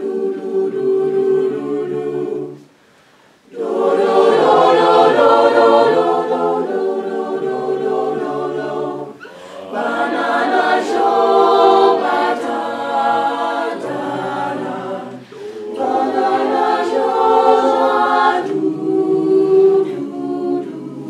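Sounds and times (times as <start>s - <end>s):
a cappella group singing harmony: 0.0s - 21.0s.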